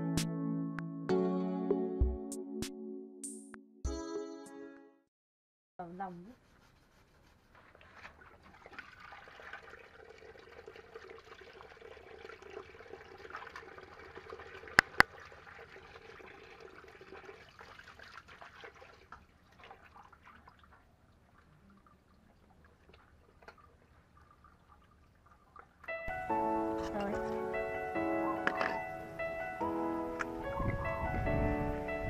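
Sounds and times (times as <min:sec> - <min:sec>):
hand rubbing fish: 0:06.1 - 0:08.3
tap water running: 0:07.8 - 0:20.8.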